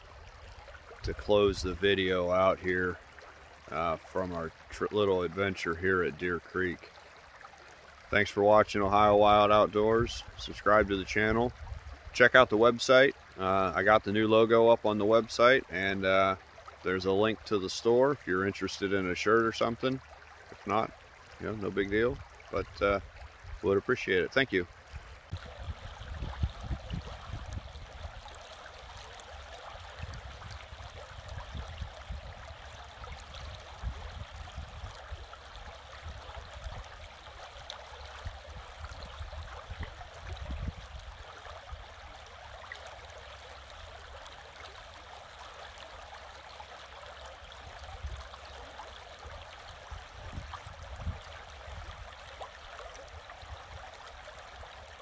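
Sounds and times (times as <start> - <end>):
water rushing over stones: 0.0 - 55.0.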